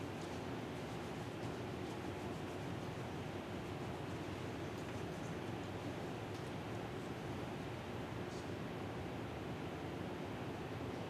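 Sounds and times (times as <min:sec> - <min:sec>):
light rustles and ticks: 0:00.0 - 0:07.4, 0:08.2 - 0:08.6
faint low hum: 0:00.0 - 0:11.0.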